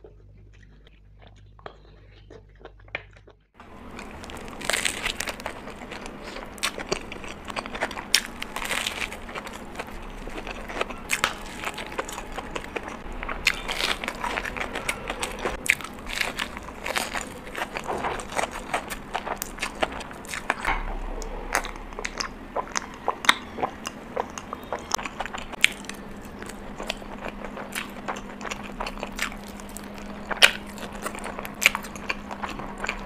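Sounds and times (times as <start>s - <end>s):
person chewing food: 0.0s - 33.0s.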